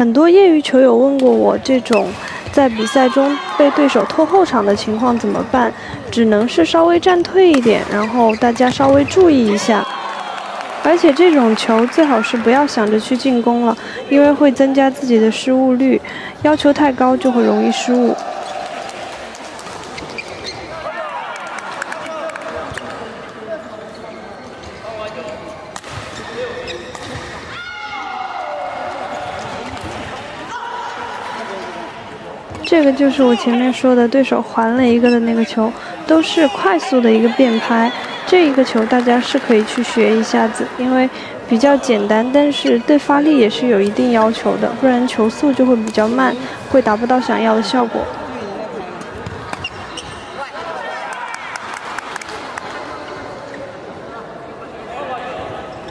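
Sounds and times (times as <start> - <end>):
background chatter: 0.0 - 27.5, 28.1 - 55.9
voices in a hall: 0.0 - 55.9
sneakers squeaking on court floor: 1.3 - 9.8, 19.6 - 20.9, 22.6 - 27.5, 32.4 - 33.8, 34.6 - 39.3, 41.6 - 50.6.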